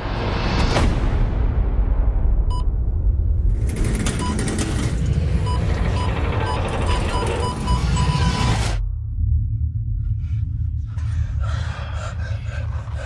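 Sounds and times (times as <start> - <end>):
deep rumble: 0.0 - 13.0.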